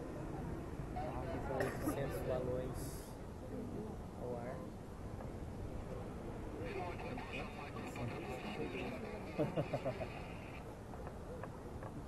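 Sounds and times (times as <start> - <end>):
faint talk of passengers: 0.0 - 4.7, 5.8 - 10.6.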